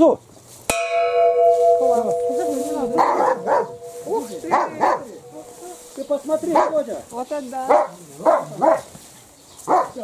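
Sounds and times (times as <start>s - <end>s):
metal bell ringing: 0.7s - 6.5s
voices: 0.7s - 8.9s
dog barking: 3.0s - 5.9s, 6.5s - 6.8s, 7.7s - 8.9s, 9.7s - 10.0s.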